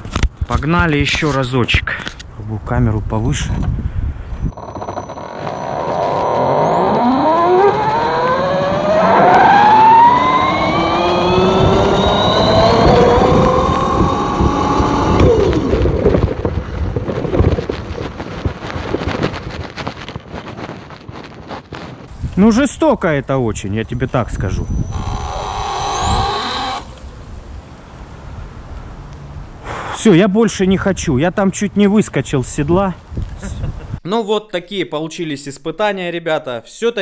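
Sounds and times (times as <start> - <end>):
road rumble: 0.0 - 22.5, 23.4 - 31.2
wind: 0.0 - 37.0
electric motor whining: 4.5 - 16.0, 24.8 - 27.0.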